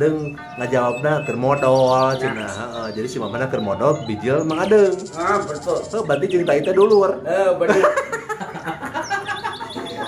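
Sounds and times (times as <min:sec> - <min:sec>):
bird chirping in high peeps: 0:00.0 - 0:07.6, 0:08.6 - 0:10.0.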